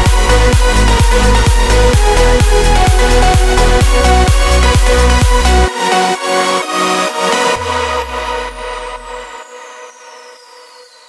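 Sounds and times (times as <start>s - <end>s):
house music bass and chord: 0.0s - 10.4s.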